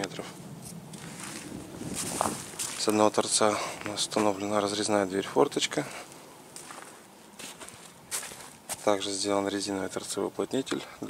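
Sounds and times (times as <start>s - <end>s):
footsteps crunching on snow: 0.6s - 4.6s, 5.8s - 9.2s.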